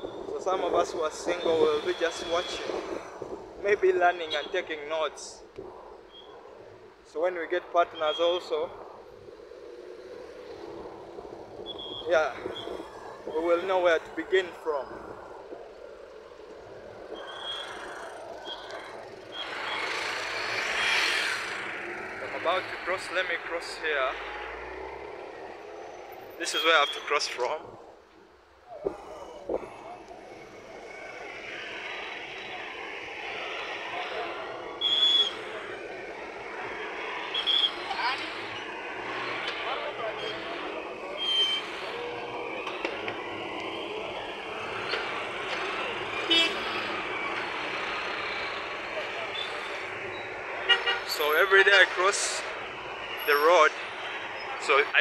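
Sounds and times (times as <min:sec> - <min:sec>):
people's voices: 0:00.0 - 0:05.8, 0:06.5 - 0:20.4, 0:21.4 - 0:55.0
road traffic: 0:00.0 - 0:55.0.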